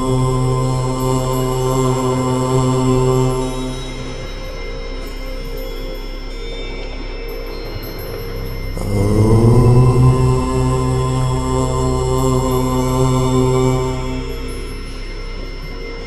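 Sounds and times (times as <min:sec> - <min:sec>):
man chanting om: 0:00.0 - 0:16.0
steady background drone: 0:00.0 - 0:16.0.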